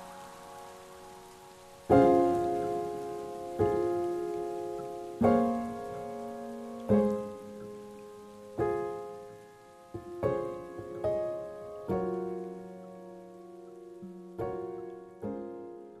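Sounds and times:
faint steady hiss: 0.0 - 16.0
soft keyboard chords: 0.0 - 16.0.

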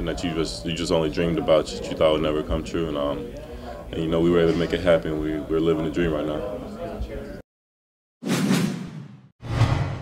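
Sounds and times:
whoosh sound effects: 8.2 - 10.0.

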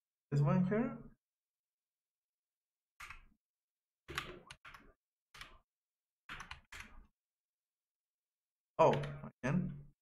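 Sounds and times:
typing on keyboard: 4.1 - 5.7, 6.3 - 7.1.

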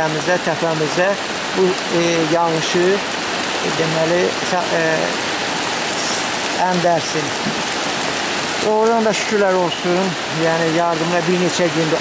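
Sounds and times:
man speaking: 0.0 - 5.2, 5.9 - 7.6, 8.6 - 12.0
rushing stream in flood: 0.0 - 12.0.

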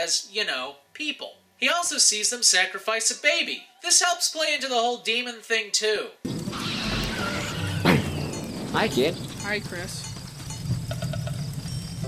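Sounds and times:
cricket chirps: 6.3 - 12.0
low steady rumble: 6.3 - 12.0.

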